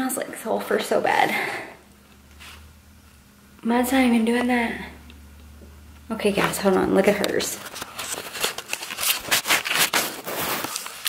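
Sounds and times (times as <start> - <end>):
clothing brushing: 2.4 - 2.7.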